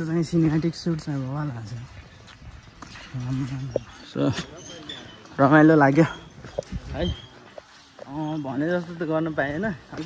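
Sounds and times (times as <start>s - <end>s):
footsteps on steel grating: 0.0s - 10.0s.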